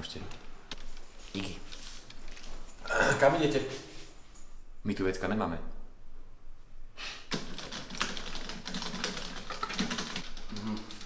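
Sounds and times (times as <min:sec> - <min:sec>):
typing on computer keyboard: 0:07.3 - 0:11.0.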